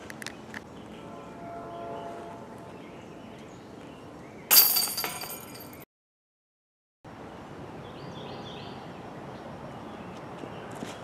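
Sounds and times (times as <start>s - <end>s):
metal chains jangling: 4.5s - 5.8s.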